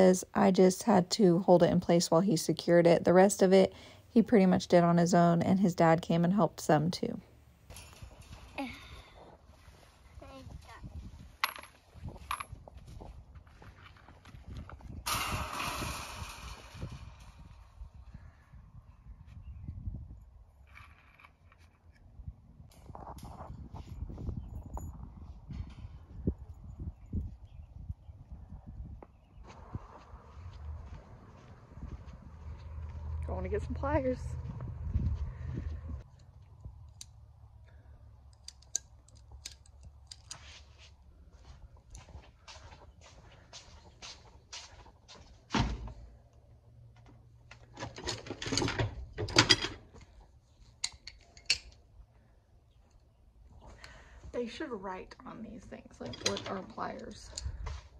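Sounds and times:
wind buffeting microphone: 8.0 - 13.6, 14.2 - 20.6, 22.1 - 36.8, 55.8 - 57.9.

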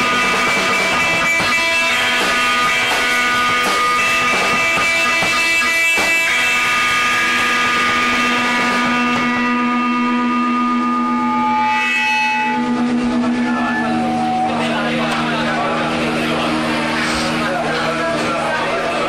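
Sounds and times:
struck notes: 0.0 - 19.0
sustained rock drone: 0.0 - 19.0.

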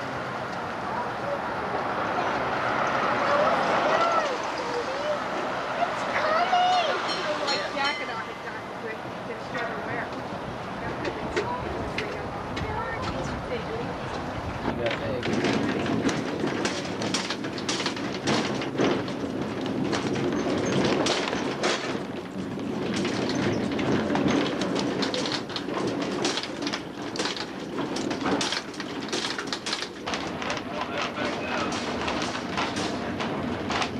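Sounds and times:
electric trolley car rumbling: 0.0 - 33.9
people talking: 3.1 - 10.2, 10.8 - 14.0, 14.7 - 15.6, 30.6 - 31.9
clicks and rattles: 14.6 - 33.9.

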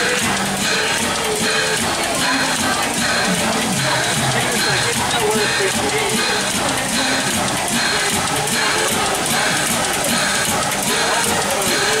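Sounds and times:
locomotive pulsing: 0.0 - 12.0.

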